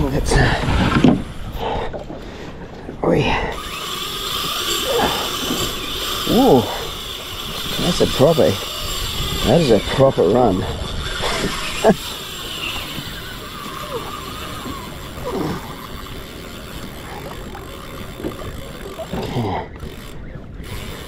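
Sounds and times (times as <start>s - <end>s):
fishing reel drag buzzing: 3.3s - 21.0s.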